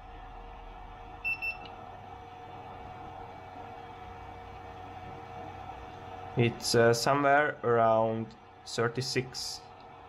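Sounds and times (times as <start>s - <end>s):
pump and power supply hum: 0.0s - 10.0s
thermometer beeps: 1.2s - 1.7s.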